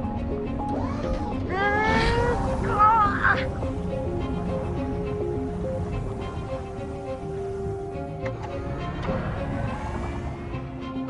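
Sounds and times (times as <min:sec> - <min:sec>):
background score music: 0:00.0 - 0:11.0.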